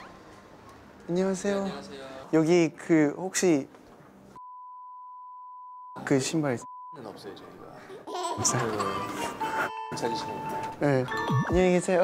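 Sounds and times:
censor bleep: 0:04.4 - 0:06.0, 0:06.6 - 0:07.1.

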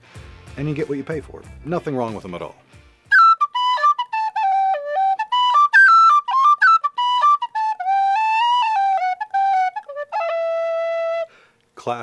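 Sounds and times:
tin whistle playing a quick tune: 0:03.1 - 0:11.3.

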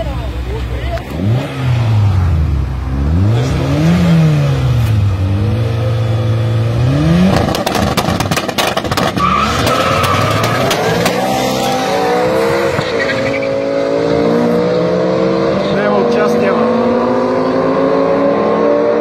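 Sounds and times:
car engines revving: 0:00.0 - 0:19.0
tyre squeal: 0:09.0 - 0:11.9, 0:12.7 - 0:13.8.

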